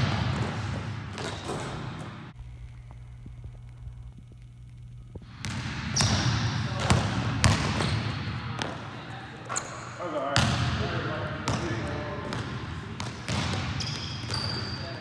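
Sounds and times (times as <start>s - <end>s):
basketballs bouncing on gym floor: 0.0s - 2.3s, 5.1s - 8.9s, 10.3s - 15.0s
low hum: 0.0s - 5.6s.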